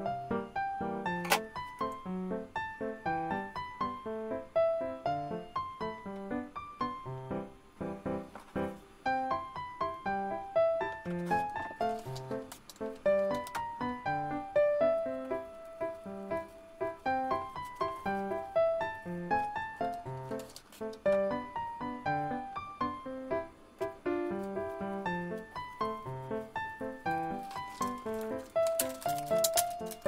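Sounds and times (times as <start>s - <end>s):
light background music: 0.0s - 30.0s.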